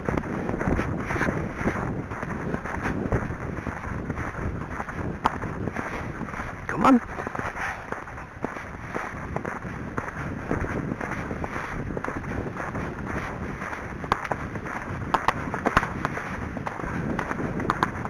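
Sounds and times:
horse hooves on dirt trail: 0.0s - 18.0s
steady rustling: 0.0s - 18.0s.

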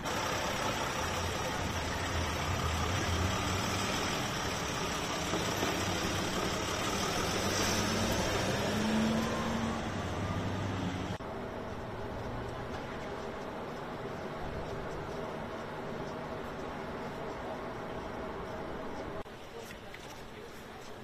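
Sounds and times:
vehicle engine idling: 0.0s - 19.2s
street noise: 0.0s - 21.0s.

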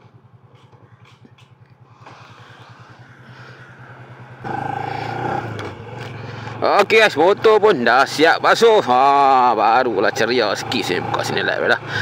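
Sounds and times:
motorcycle engine idling: 0.0s - 12.0s.

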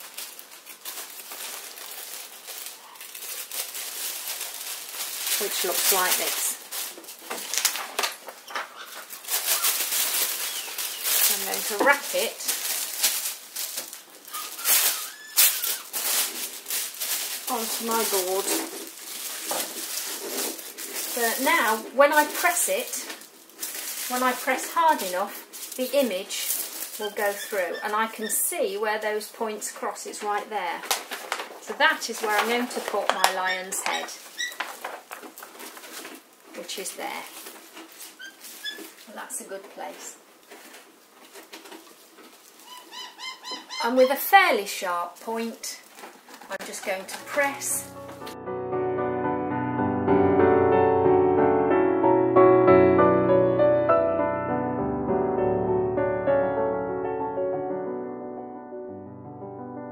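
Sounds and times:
paper rustling and flapping: 0.0s - 29.4s, 30.0s - 48.4s.

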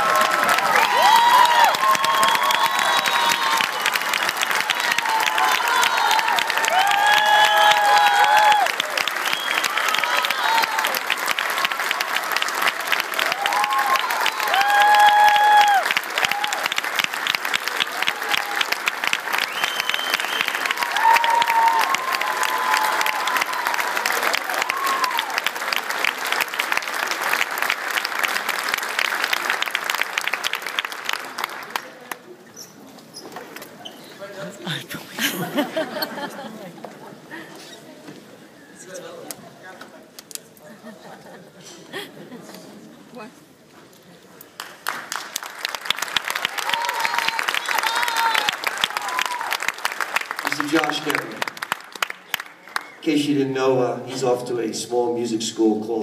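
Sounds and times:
audience clapping: 0.0s - 32.4s, 44.4s - 53.4s
shouted calls and whoops: 0.1s - 4.0s, 4.8s - 8.8s, 13.3s - 16.7s, 20.8s - 23.8s, 46.6s - 49.6s.

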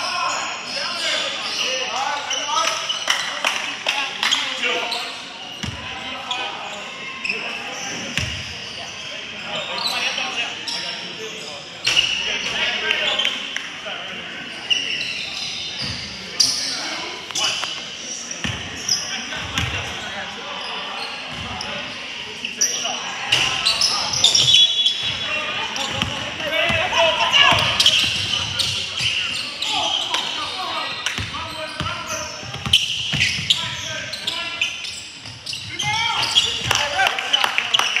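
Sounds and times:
players' voices: 0.0s - 38.0s.

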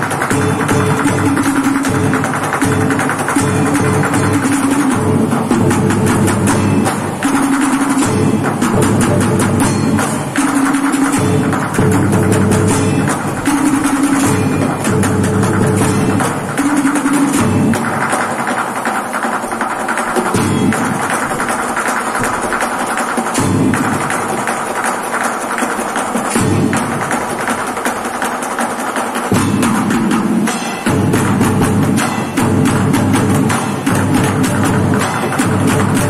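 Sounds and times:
deeper drum strokes: 0.0s - 36.0s.

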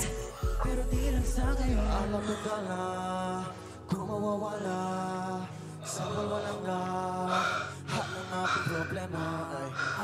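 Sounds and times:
r and b song with male vocals: 0.0s - 10.0s.

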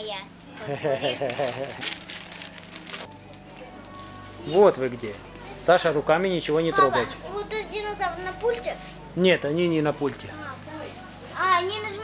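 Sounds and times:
plastic packaging crinkling: 1.2s - 4.2s.

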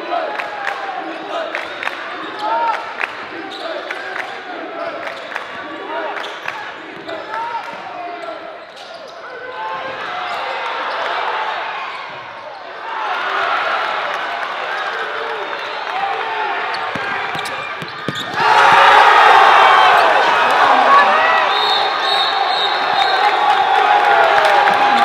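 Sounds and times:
crowd voices: 0.0s - 25.0s
sneakers squeaking: 6.2s - 11.2s, 16.6s - 19.1s.

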